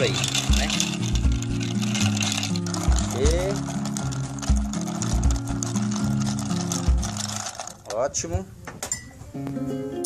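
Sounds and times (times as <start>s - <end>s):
background music with beat: 0.0s - 7.3s
ice clinking in a glass: 0.0s - 7.8s.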